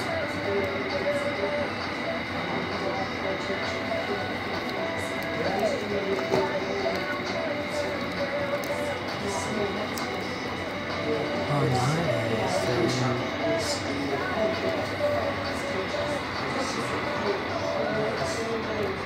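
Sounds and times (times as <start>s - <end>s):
electrical hum and high whine: 0.0s - 19.0s.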